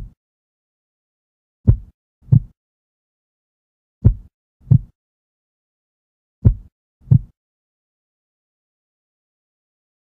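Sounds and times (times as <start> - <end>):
heartbeat thuds: 1.7 - 2.6, 4.0 - 5.0, 6.4 - 7.4.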